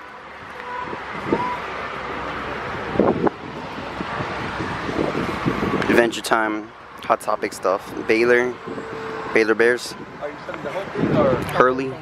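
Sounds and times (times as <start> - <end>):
steady rushing noise: 0.0 - 12.0.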